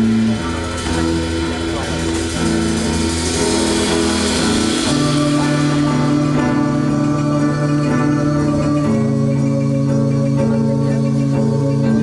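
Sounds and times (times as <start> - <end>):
live band droning chords: 0.0 - 12.0.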